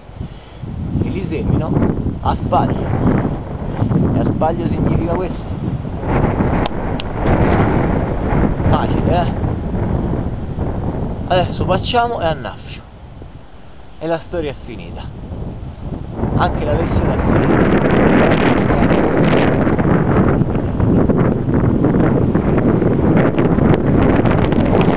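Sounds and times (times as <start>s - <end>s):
wind buffeting microphone: 0.0s - 24.9s.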